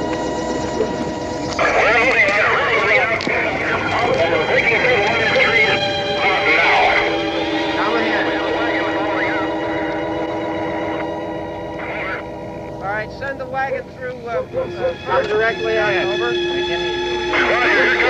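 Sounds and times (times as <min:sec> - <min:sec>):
crowd of overlapping voices: 0:00.0 - 0:18.0
droning music chord: 0:00.0 - 0:18.0.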